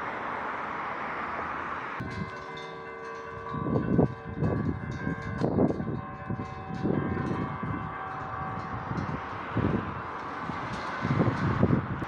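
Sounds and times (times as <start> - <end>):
wind buffeting microphone: 2.0 - 12.0
bell ringing: 2.1 - 9.3.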